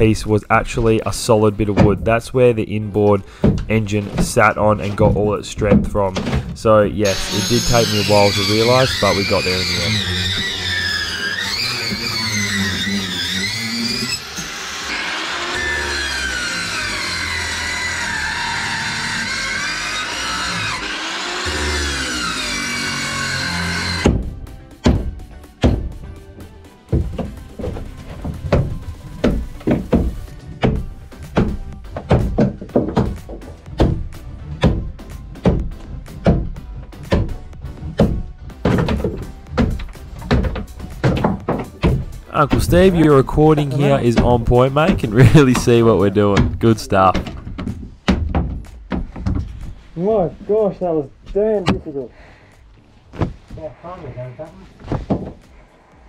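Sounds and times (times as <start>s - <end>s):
background music: 0.0s - 56.0s.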